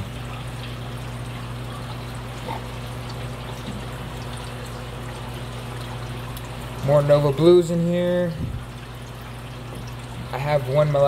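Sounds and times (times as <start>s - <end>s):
aquarium water trickling and bubbling: 0.0s - 11.0s
low steady hum: 0.0s - 11.0s.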